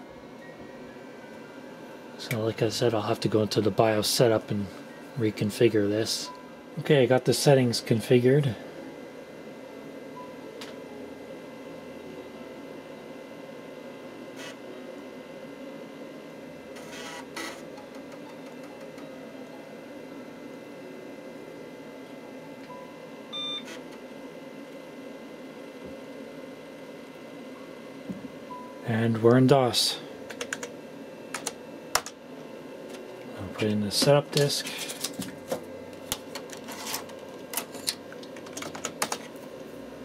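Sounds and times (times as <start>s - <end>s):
computer fan hum: 0.0s - 40.0s
disk drive noise: 0.0s - 40.0s.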